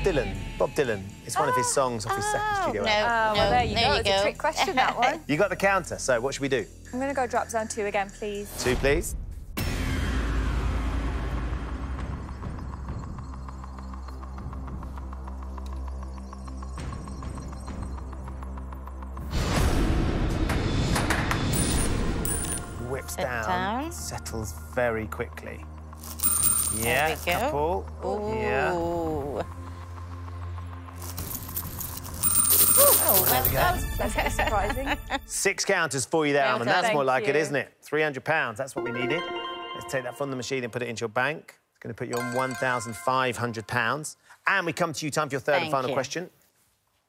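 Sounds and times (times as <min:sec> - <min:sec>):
suspense music: 0:08.0 - 0:26.4, 0:27.5 - 0:32.5
arcade coins clattering: 0:21.5 - 0:22.8, 0:26.0 - 0:27.4, 0:31.0 - 0:34.0, 0:42.2 - 0:43.0.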